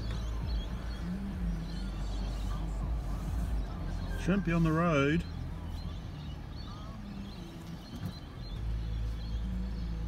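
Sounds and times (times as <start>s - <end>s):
car rumble inside cabin: 0.0s - 10.0s
faint bird chirps: 0.0s - 10.0s.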